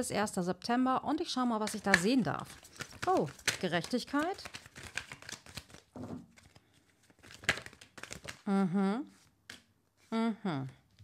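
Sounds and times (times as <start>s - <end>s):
cards being shuffled: 1.6s - 8.4s, 9.2s - 9.7s.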